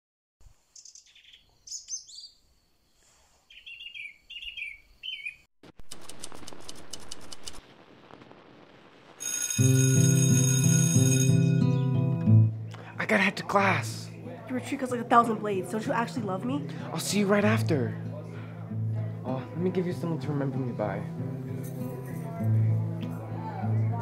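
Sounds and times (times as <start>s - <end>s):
bird chirps: 0.7s - 2.5s, 3.5s - 5.5s
rapid clicks: 5.7s - 7.8s
steady hiss: 6.0s - 9.2s.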